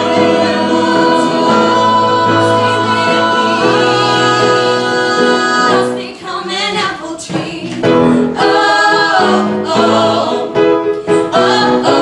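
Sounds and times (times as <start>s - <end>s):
ensemble singing in harmony: 0.0s - 12.0s.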